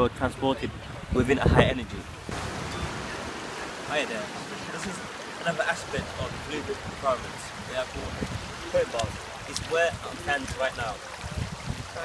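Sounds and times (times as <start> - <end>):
wind: 0.0 - 12.0
sea surf: 0.4 - 12.0.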